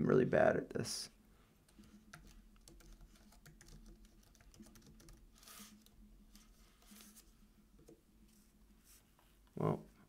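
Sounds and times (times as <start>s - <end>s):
typing on computer keyboard: 1.7s - 5.9s.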